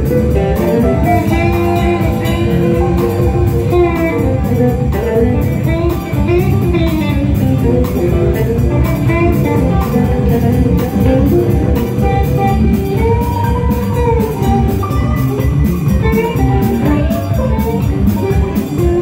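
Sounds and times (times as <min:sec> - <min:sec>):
drum kit: 0:00.0 - 0:19.0
electric guitar lines: 0:00.0 - 0:19.0.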